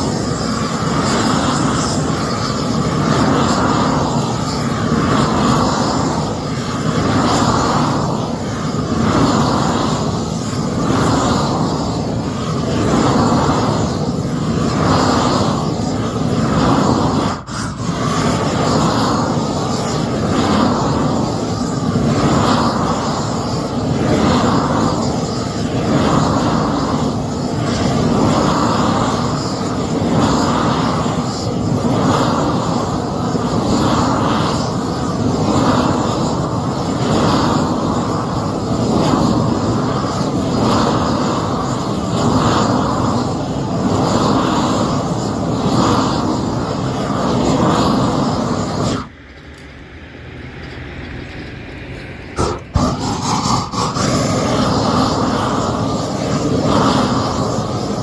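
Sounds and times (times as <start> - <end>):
roofing torch flame roaring: 0.0 - 58.0.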